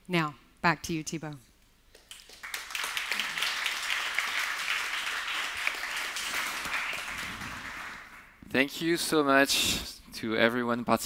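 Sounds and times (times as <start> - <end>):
audience applauding: 2.0 - 8.4.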